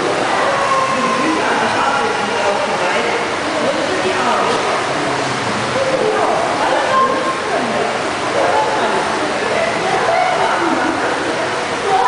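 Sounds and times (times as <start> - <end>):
voices chattering: 0.0 - 12.0
water splashing: 0.0 - 12.0.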